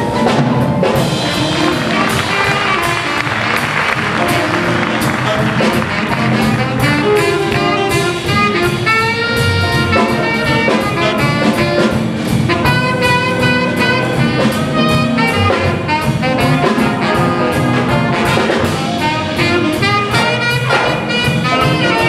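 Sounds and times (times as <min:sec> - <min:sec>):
drums: 0:00.0 - 0:22.0
piano: 0:00.0 - 0:22.0
saxophones and brass chords: 0:00.0 - 0:22.0
upright bass: 0:00.0 - 0:22.0.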